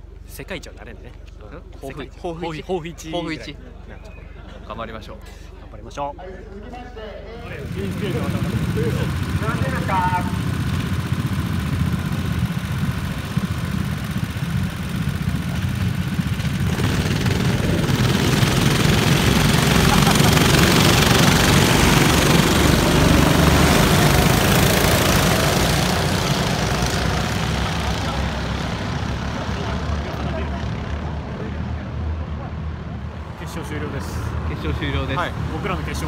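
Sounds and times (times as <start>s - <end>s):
go-kart engines passing: 7.4s - 36.0s.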